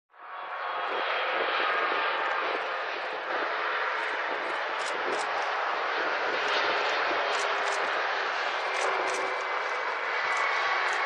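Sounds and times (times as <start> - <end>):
jet engine noise: 0.1 - 11.0.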